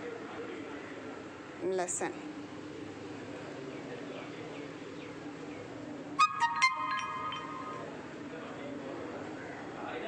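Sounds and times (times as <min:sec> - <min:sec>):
phone notification chime: 0:06.2 - 0:08.0.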